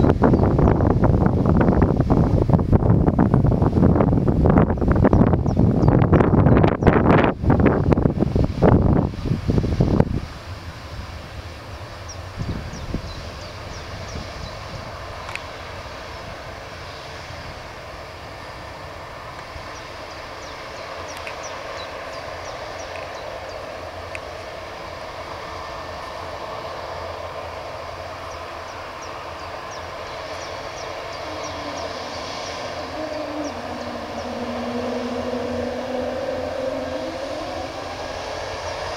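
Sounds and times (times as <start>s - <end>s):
jet engine whine rising: 0.0s - 38.9s
jet engines humming: 0.0s - 38.9s
wind buffeting microphone: 0.0s - 38.9s.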